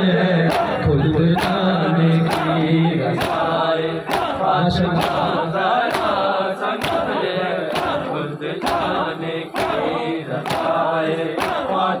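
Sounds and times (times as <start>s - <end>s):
crowd of men chanting: 0.0s - 12.0s.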